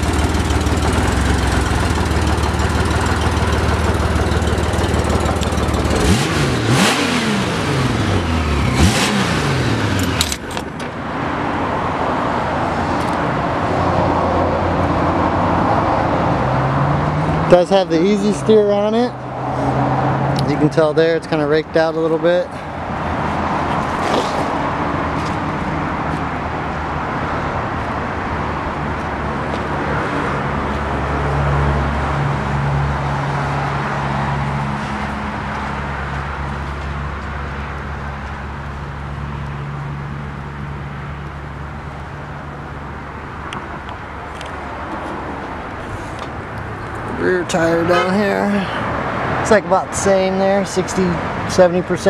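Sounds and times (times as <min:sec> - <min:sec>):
motorcycle engine idling: 0:00.0 - 0:06.0.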